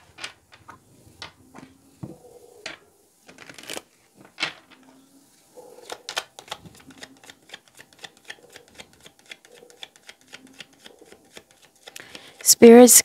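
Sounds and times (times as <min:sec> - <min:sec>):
cards being shuffled: 0:02.7 - 0:04.8, 0:05.8 - 0:12.8.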